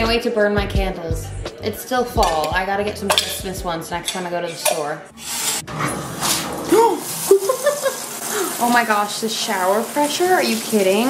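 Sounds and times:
shower spray hissing: 6.1s - 11.0s.

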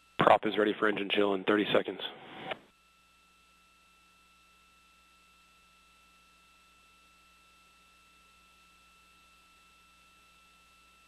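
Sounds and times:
radio hiss burst: 1.6s - 2.6s.

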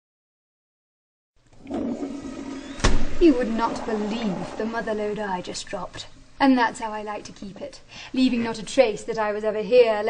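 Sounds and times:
low steady hum: 1.4s - 10.0s.

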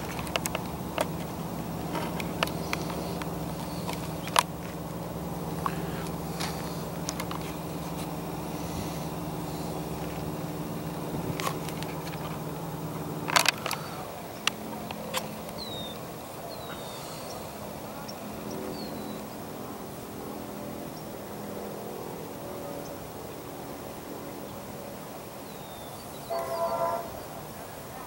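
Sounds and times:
sharp clicks: 0.0s - 4.8s, 5.5s - 8.2s, 13.2s - 16.0s
birds chirping: 0.0s - 28.0s
train horn: 26.3s - 27.4s.

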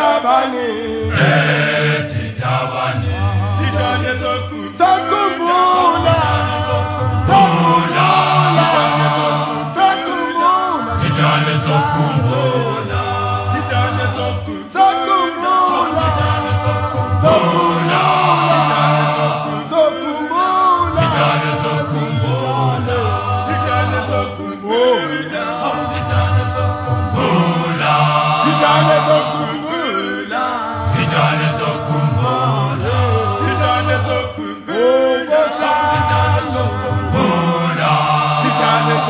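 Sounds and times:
male choir singing: 0.0s - 39.0s.

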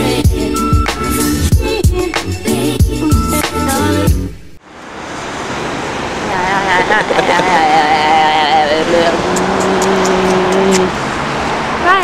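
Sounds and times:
street traffic: 4.1s - 12.0s
woman vocalizing wordlessly: 6.3s - 11.0s.

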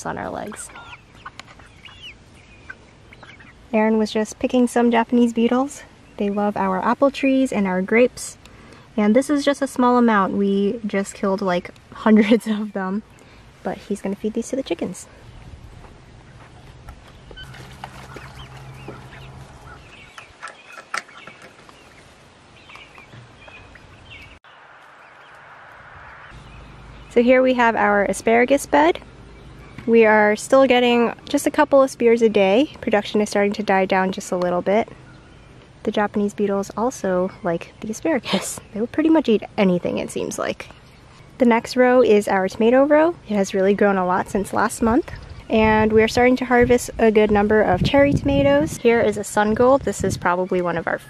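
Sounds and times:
chicks chirping and clucking: 0.0s - 8.0s, 16.3s - 24.4s
young chickens calling: 0.0s - 51.0s.

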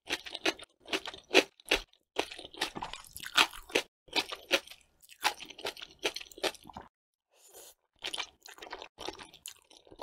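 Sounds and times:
close chewing with crunches: 0.0s - 6.9s, 7.6s - 10.0s.

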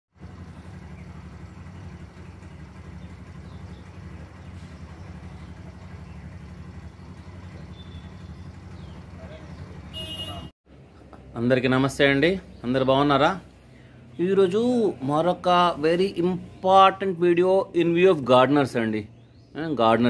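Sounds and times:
low mechanical rumble: 0.1s - 20.0s.

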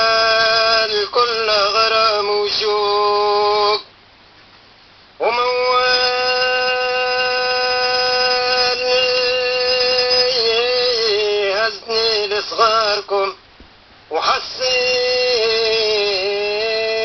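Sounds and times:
person singing long sustained notes: 0.0s - 3.9s, 5.2s - 13.4s, 14.1s - 17.0s.

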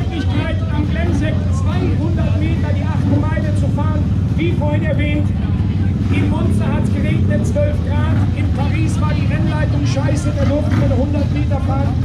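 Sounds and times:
low engine rumble: 0.0s - 12.0s
man speaking over public address: 0.0s - 12.0s.

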